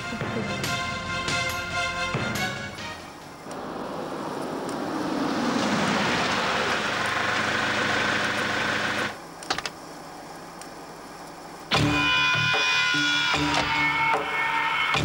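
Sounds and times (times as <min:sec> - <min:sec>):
car engine and tyre noise: 0:03.2 - 0:09.2.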